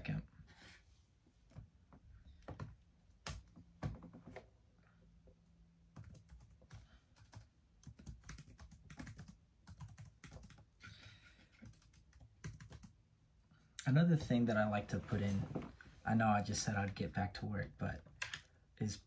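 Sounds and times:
typing on laptop keyboard: 5.9s - 10.7s, 11.5s - 13.0s.

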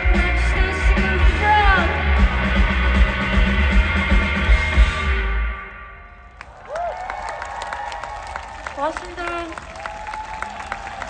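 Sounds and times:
rock band playing live: 0.0s - 6.0s
crowd cheering: 6.2s - 11.0s.

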